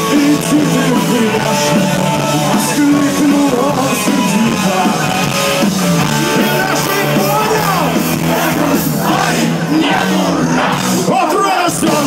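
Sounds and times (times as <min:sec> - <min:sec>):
person singing: 0:00.0 - 0:05.4
drums: 0:00.0 - 0:12.0
electric guitar: 0:00.0 - 0:12.0
punk rock band playing live: 0:00.0 - 0:12.0.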